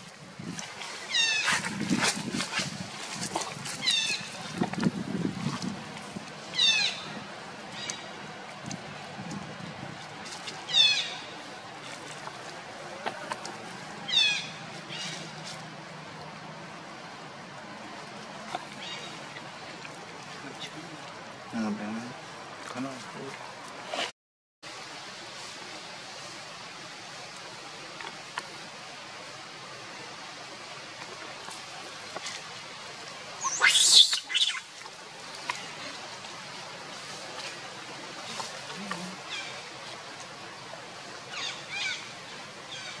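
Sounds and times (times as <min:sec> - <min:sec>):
steady outdoor hiss: 0:00.0 - 0:43.0
monkey screaming: 0:33.4 - 0:34.6
faint high monkey calls: 0:33.4 - 0:34.7.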